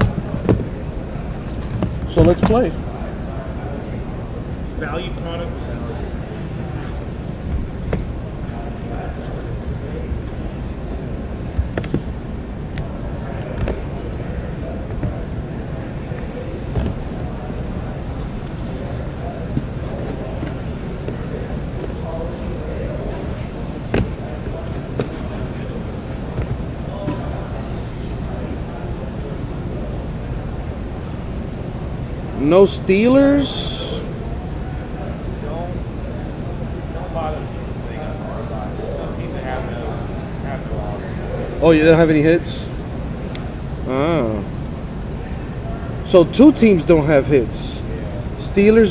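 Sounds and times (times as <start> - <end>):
faint indistinct voices: 0.0 - 48.9
low background hum: 0.0 - 48.9.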